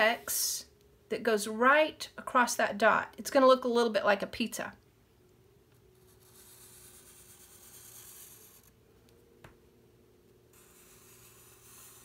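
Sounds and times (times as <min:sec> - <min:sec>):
marker scratching on paper: 0:06.0 - 0:08.7, 0:10.5 - 0:12.0.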